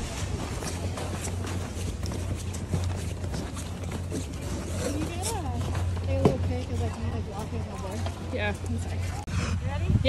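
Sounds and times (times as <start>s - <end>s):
footsteps crunching on snow: 0.0s - 9.2s
steady low rumble: 0.0s - 10.0s.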